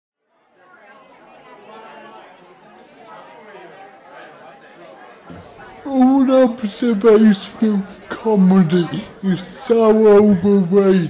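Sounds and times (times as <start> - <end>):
bar chatter of many voices: 0.2 - 11.0
person speaking clearly: 5.3 - 11.0.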